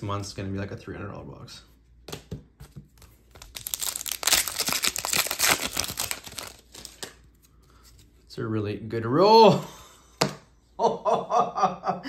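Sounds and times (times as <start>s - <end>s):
wrapper tearing and crinkling: 3.3s - 7.3s.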